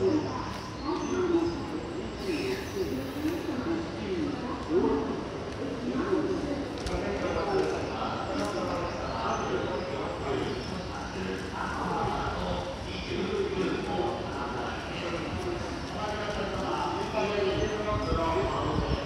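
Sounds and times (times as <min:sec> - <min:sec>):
echoing speech: 0:00.0 - 0:19.0.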